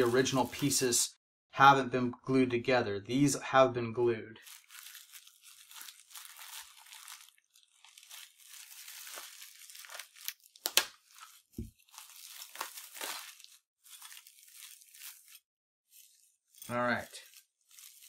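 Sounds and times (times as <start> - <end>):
plastic wrapping crinkling: 0.0 - 0.8, 4.4 - 18.0.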